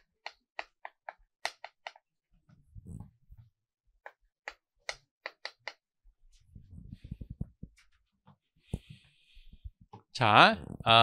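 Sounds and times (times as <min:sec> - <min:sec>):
chalk tapping and scraping on blackboard: 0:00.0 - 0:02.1, 0:04.0 - 0:05.9.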